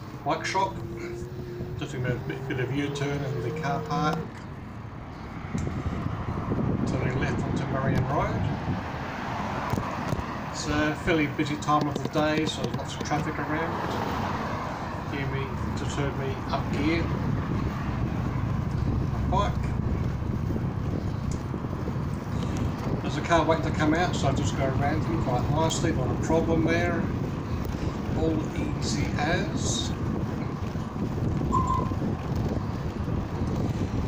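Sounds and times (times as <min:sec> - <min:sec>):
road traffic rumble: 0:00.0 - 0:34.0
wind noise on microphone: 0:00.0 - 0:34.0.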